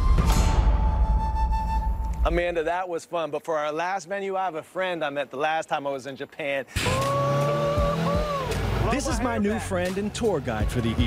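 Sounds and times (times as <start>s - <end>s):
man whooping shout: 6.8s - 9.6s
car engine and road noise: 6.8s - 11.0s.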